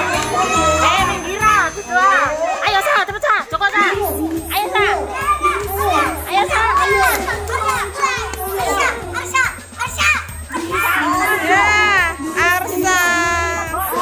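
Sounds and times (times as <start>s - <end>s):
background music with bass: 0.0s - 14.0s
children shouting and cheering: 0.0s - 14.0s.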